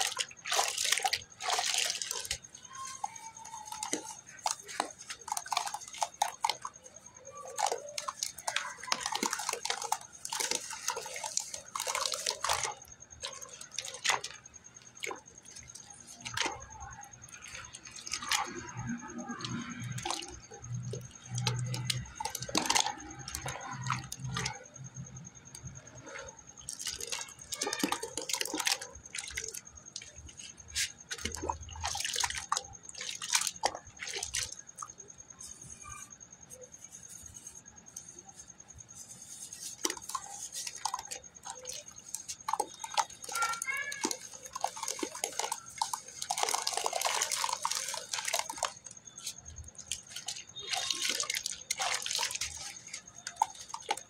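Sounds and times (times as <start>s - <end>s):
hand squelching wet clay: 0.0s - 54.0s
water dripping and splashing: 0.0s - 54.0s.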